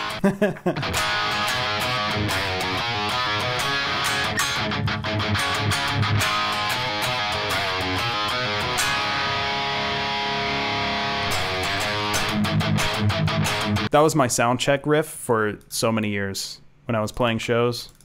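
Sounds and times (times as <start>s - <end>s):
heavy metal electric guitar riff: 0.8s - 13.9s.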